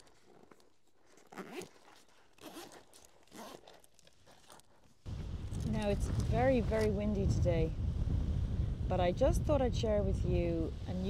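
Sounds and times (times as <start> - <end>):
zip pulled on fabric bag: 0.0 - 6.9.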